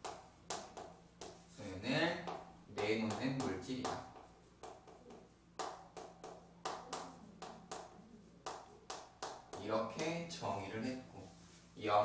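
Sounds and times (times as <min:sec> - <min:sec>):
chalk writing on chalkboard: 0:00.0 - 0:10.4.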